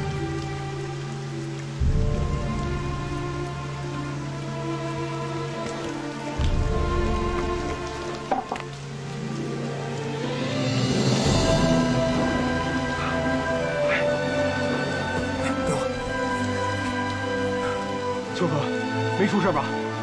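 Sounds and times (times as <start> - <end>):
music of long held notes: 0.0 - 20.0
steady rain: 0.0 - 20.0.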